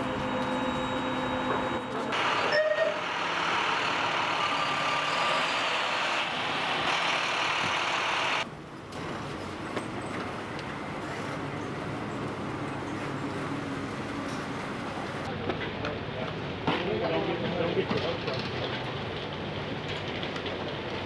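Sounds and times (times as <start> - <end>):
vehicle engine: 0.0 - 16.5
traffic noise: 0.0 - 21.0
brief high squeal: 0.3 - 3.0.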